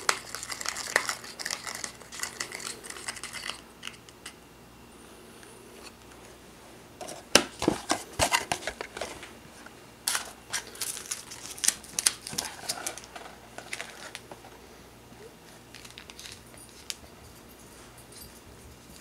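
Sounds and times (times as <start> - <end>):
plastic packet crinkling: 0.0 - 4.0, 10.1 - 14.3, 15.7 - 17.0
plastic spoon stirring in tray: 0.0 - 4.4.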